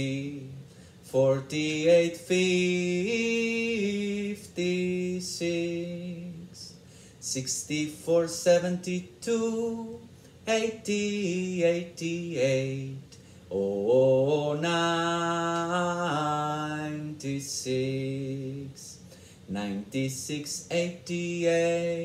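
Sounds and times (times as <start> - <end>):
man singing unaccompanied: 0.0 - 22.0.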